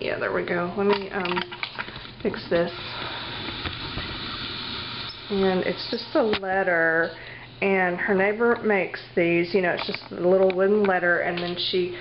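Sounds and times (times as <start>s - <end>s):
steady hiss: 2.0s - 6.4s.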